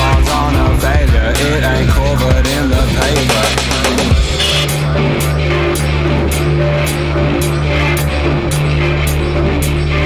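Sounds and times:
rock music: 0:00.0 - 0:10.0.

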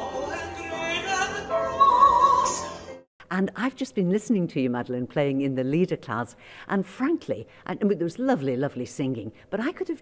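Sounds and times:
woman singing classical song: 0:00.0 - 0:02.7.

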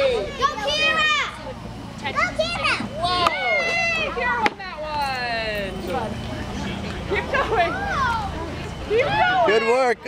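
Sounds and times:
young children shouting: 0:00.0 - 0:01.4, 0:02.1 - 0:04.6, 0:07.5 - 0:10.0.

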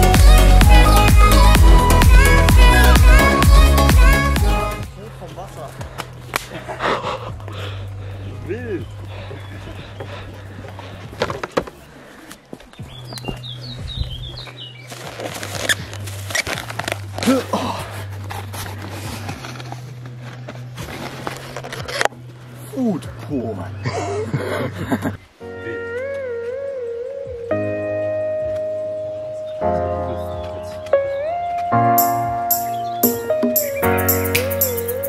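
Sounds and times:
quiet background music: 0:04.7 - 0:35.0
footsteps on dirt trail: 0:08.8 - 0:22.5.

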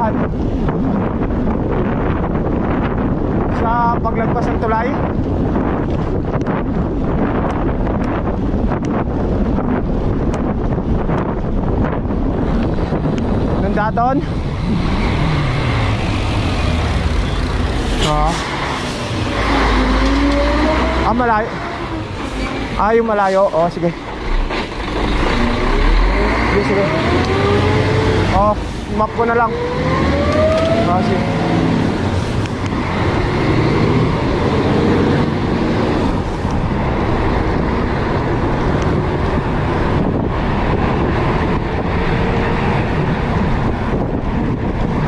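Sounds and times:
road rumble: 0:00.0 - 0:45.0
wind rushing over microphone: 0:00.0 - 0:45.0
vehicle engine hum: 0:04.6 - 0:45.0.

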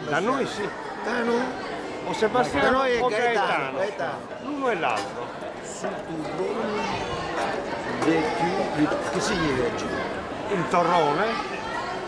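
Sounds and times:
chatter of people around: 0:00.0 - 0:12.0.

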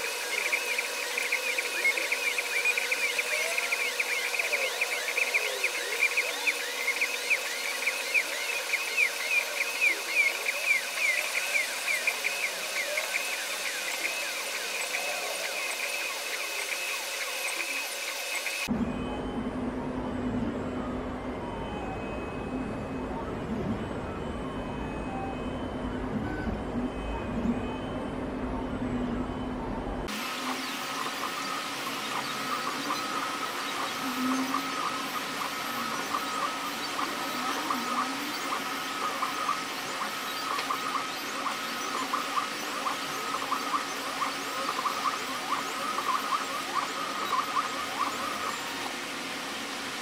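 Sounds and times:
chirps and small ticks: 0:00.0 - 0:18.7, 0:30.1 - 0:49.0
stepper motors whirring: 0:00.0 - 0:18.8, 0:30.0 - 0:50.0.

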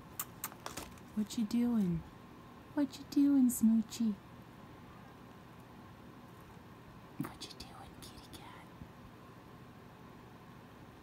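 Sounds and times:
faint room noise: 0:00.0 - 0:11.0
person whispering: 0:07.2 - 0:08.7.

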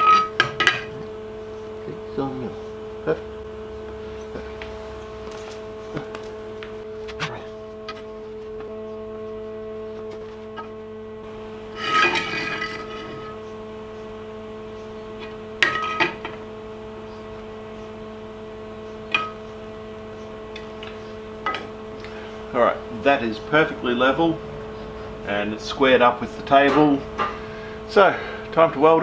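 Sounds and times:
steady hum: 0:00.0 - 0:29.0.

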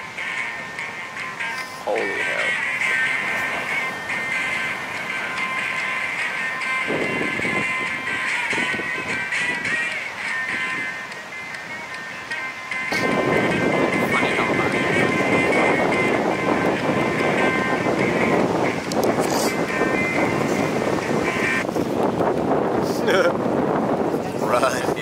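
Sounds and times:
background music with held tones: 0:00.0 - 0:21.7
wind buffeting microphone: 0:00.0 - 0:25.0
person speaking: 0:01.5 - 0:04.0.

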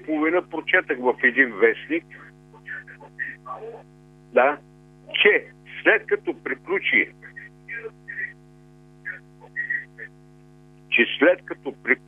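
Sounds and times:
electrical hum on phone line: 0:00.0 - 0:12.0
faint broken voice: 0:09.1 - 0:10.1.

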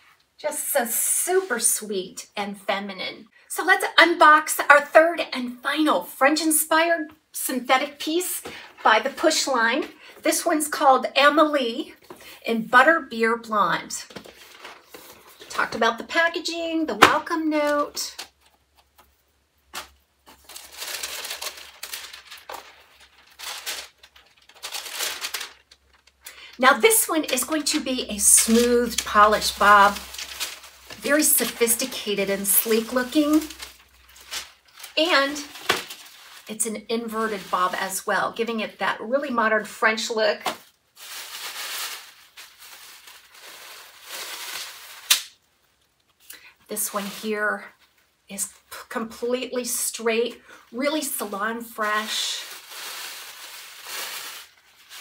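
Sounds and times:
tissue paper rustling: 0:14.1 - 0:15.7, 0:19.8 - 0:38.1, 0:40.4 - 0:45.4, 0:46.7 - 0:48.0, 0:51.1 - 0:55.0.

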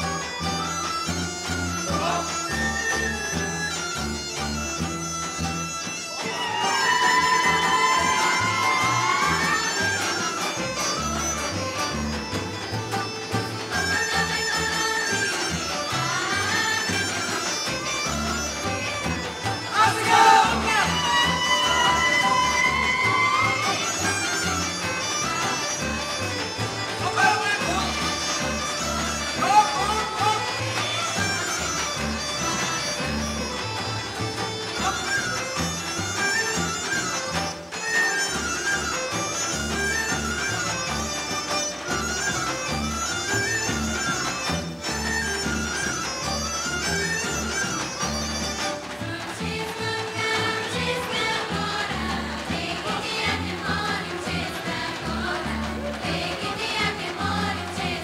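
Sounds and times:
reedy bagpipe-like melody: 0:00.0 - 0:58.0.

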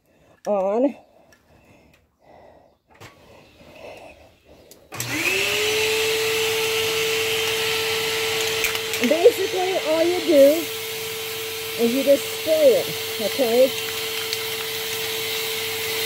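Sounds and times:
vacuum cleaner motor whine: 0:04.9 - 0:16.0.

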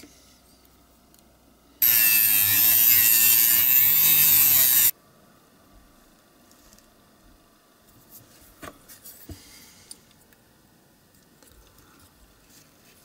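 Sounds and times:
rotary tool with cutting disc: 0:01.8 - 0:04.9.

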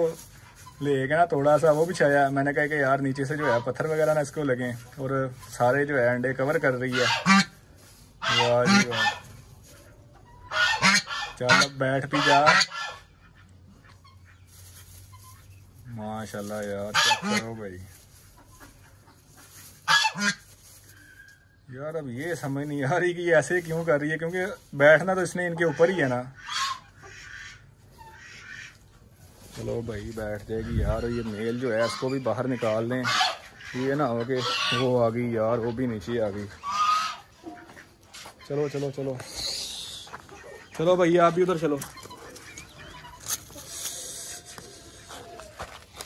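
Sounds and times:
goose honking: 0:03.2 - 0:03.8, 0:06.8 - 0:07.6, 0:08.2 - 0:09.4, 0:10.4 - 0:14.4, 0:16.4 - 0:21.2, 0:25.2 - 0:28.8, 0:30.7 - 0:35.1, 0:36.6 - 0:39.0.

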